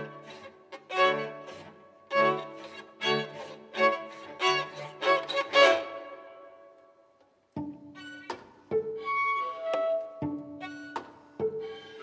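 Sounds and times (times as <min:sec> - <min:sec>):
violins playing bowed notes: 0:00.0 - 0:06.6.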